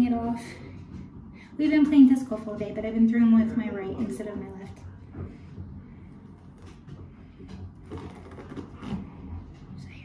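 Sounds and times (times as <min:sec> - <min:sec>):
bandage crackling and rustling: 0:07.8 - 0:09.2.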